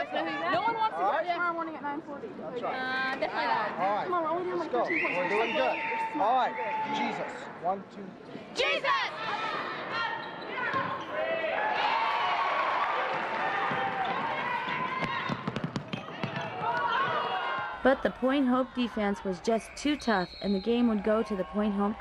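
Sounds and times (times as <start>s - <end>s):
crowd voices and cheering: 2.6s - 7.6s, 8.3s - 22.0s
basketball bouncing on hardwood: 13.6s - 17.2s.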